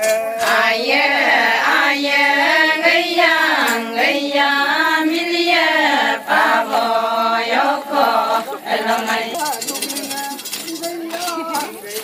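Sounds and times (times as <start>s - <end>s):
group chanting a dance song: 0.0s - 9.4s
rhythmic metallic jingling: 0.0s - 12.0s.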